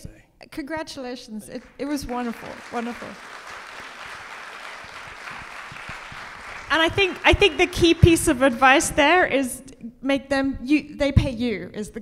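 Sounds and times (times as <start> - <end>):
audience applauding: 2.1 - 8.1.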